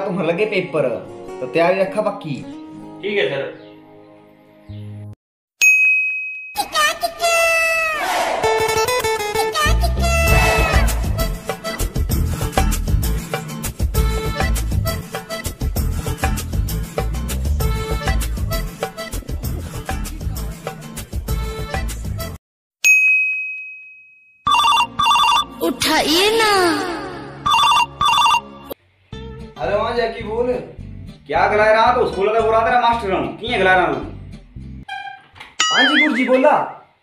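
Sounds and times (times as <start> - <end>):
background music: 0.0 - 5.2, 7.0 - 22.4, 24.6 - 34.9
bright ding: 5.6 - 6.6, 35.6 - 36.2
phone ringtone beeps: 24.5 - 25.6, 27.5 - 28.6, 35.6 - 36.3
wavering bending tone: 35.6 - 36.3.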